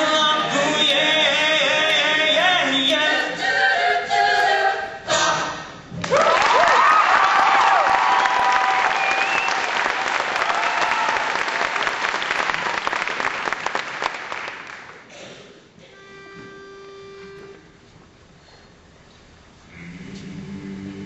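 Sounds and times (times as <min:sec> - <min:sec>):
cheering with high whoops: 0:06.0 - 0:11.8
audience applauding: 0:06.0 - 0:15.1
faint steady note: 0:15.9 - 0:17.9.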